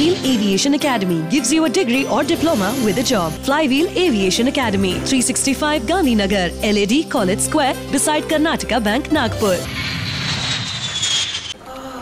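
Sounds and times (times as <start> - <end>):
jet airliner fly-past: 9.6 - 11.6.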